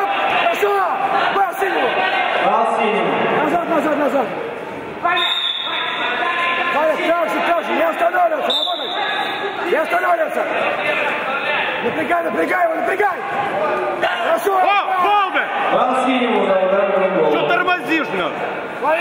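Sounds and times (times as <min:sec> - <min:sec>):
men shouting: 0:00.0 - 0:02.6.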